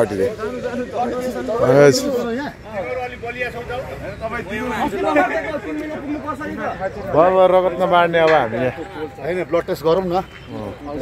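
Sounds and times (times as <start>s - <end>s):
men chatting: 0.0s - 11.0s.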